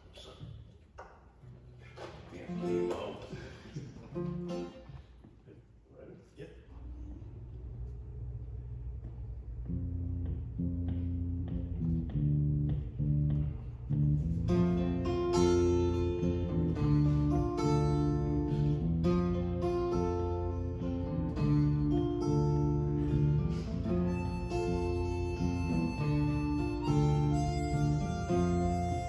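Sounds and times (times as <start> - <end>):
strummed acoustic guitars: 1.5 - 5.1, 14.2 - 29.0
electric bass line: 6.8 - 29.0
harmonica long held notes: 14.4 - 29.0.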